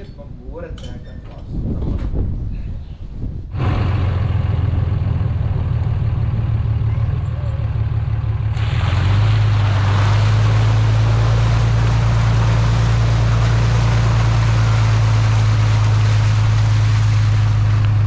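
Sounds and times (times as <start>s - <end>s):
truck engine droning: 3.5s - 18.0s
water splashing off tyre: 8.4s - 18.0s.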